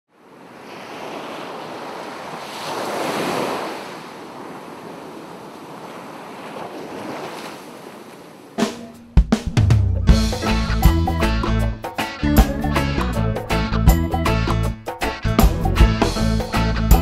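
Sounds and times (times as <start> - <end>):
sea surf breaking: 0.1 - 9.0.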